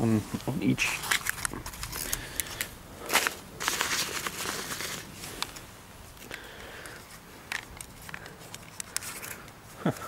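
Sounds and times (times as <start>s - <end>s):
rustle: 0.0s - 10.0s.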